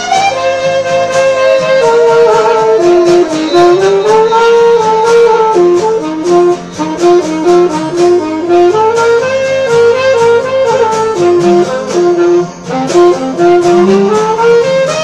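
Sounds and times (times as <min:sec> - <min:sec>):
saxophone melody: 0:00.0 - 0:15.0
strummed acoustic guitar: 0:00.0 - 0:15.0.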